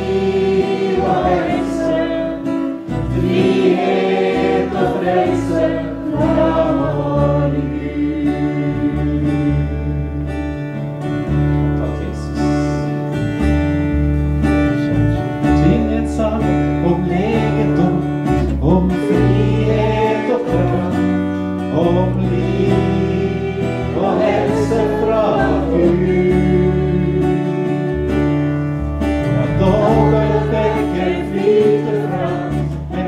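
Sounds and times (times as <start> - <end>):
voices singing: 0.0 - 10.2, 15.6 - 28.3, 29.3 - 33.0
electric bass guitar: 0.0 - 33.0
strummed guitar: 0.0 - 33.0.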